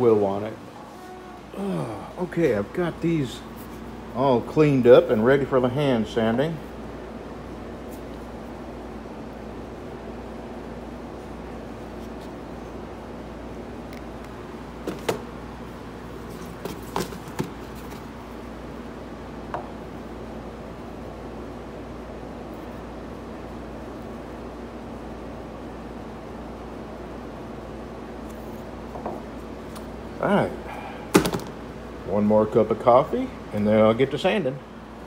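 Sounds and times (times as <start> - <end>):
workshop background hum: 0.0 - 35.0.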